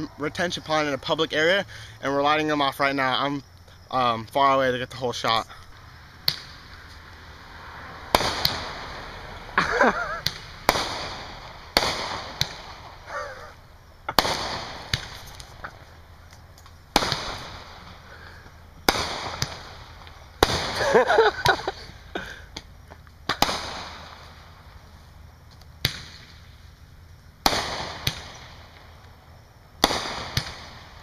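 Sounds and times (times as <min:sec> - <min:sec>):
fireworks bangs with echo: 0:06.2 - 0:06.8, 0:08.0 - 0:16.0, 0:16.9 - 0:21.9, 0:23.2 - 0:24.7, 0:27.4 - 0:29.0, 0:29.8 - 0:31.0.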